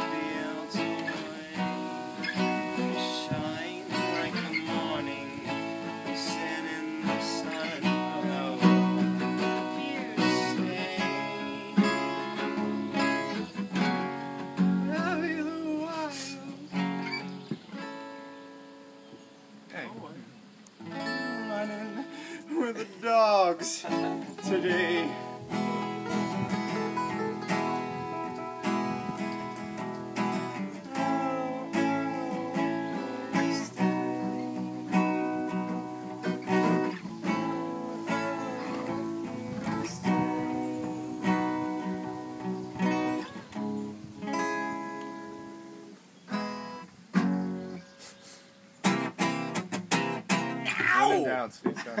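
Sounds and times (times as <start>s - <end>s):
acoustic guitar strumming: 0.0s - 20.2s, 20.8s - 51.5s.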